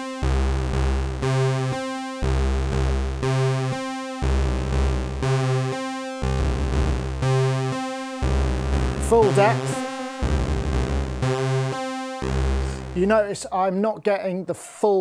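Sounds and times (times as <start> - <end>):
synthesizer bass pattern: 0.0 - 13.7.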